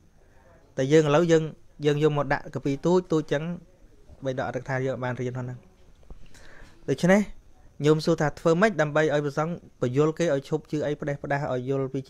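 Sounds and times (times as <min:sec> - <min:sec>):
man preaching: 0:00.8 - 0:03.6, 0:06.9 - 0:12.0.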